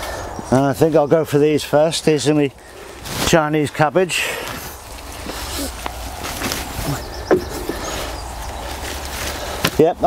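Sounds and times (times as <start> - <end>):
footsteps on wooden board: 7.3 - 8.0.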